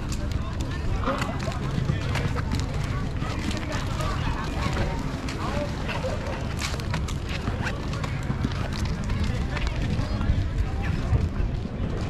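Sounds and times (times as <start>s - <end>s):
footsteps on paved path: 0.0s - 12.0s
voices of passers-by: 0.0s - 12.0s
wind rumble on microphone: 0.0s - 12.0s.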